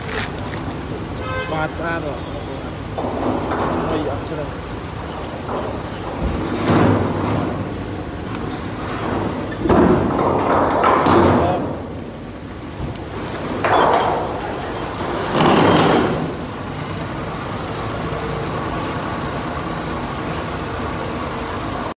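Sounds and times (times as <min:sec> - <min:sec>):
forklift running: 0:00.0 - 0:22.0
steady mechanical hum: 0:00.0 - 0:22.0.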